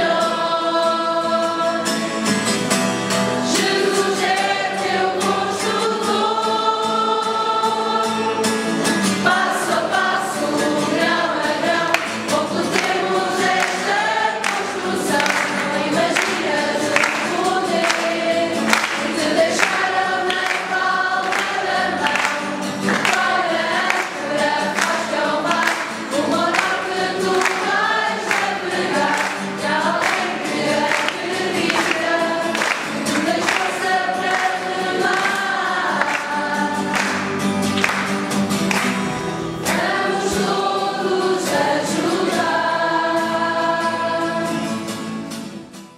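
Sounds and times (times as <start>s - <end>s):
young choir singing: 0.0s - 2.3s, 3.1s - 45.0s
strummed acoustic guitars: 0.0s - 45.9s.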